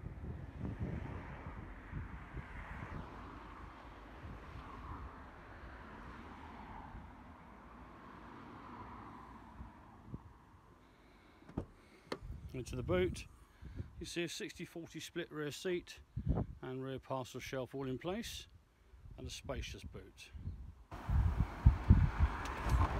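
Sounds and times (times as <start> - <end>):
wind rumbling on microphone: 0.0 - 7.4, 9.4 - 10.5, 12.2 - 14.0, 16.1 - 16.6, 19.0 - 22.9
street noise: 20.9 - 22.9.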